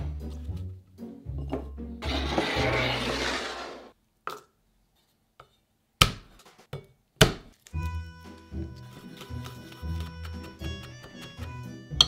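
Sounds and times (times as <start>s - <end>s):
background music with steady beat: 0.0s - 2.0s, 7.8s - 12.0s.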